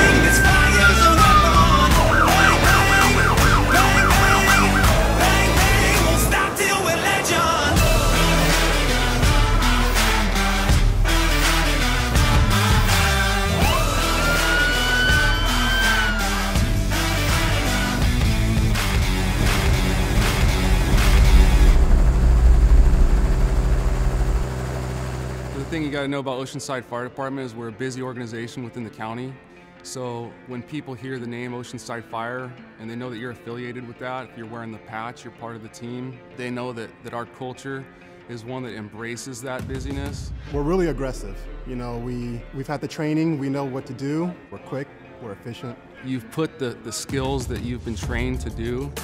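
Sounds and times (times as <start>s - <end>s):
electronic siren wailing and yelping: 0.0s - 6.0s, 13.6s - 16.5s
background music with steady beat: 0.0s - 22.1s, 37.6s - 49.0s
helicopter rotor and engine rumble: 19.2s - 26.0s.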